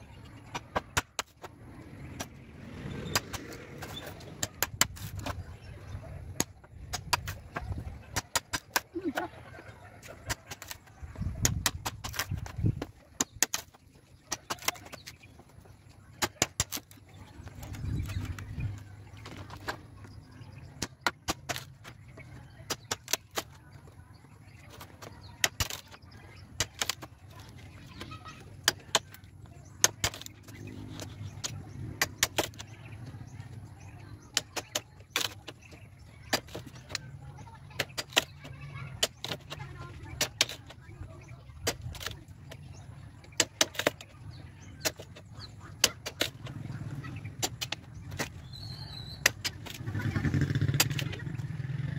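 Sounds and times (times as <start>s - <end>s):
hatchet chopping bamboo: 6.4s - 9.2s, 10.2s - 15.0s, 16.2s - 16.9s, 20.8s - 22.0s, 22.6s - 23.6s, 25.0s - 27.0s, 29.8s - 32.7s, 34.2s - 35.5s, 36.2s - 37.0s, 37.7s - 40.7s, 41.6s - 42.2s, 43.3s - 44.1s, 44.8s - 45.2s, 45.8s - 46.6s, 47.3s - 51.7s.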